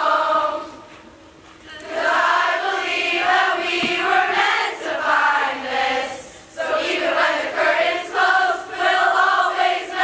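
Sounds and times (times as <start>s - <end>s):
girls choir singing: 0.0s - 1.1s, 1.7s - 10.0s.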